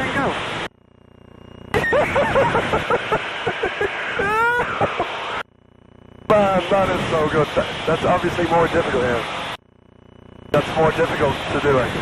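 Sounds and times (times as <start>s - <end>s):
man laughing over headset: 1.8s - 5.4s.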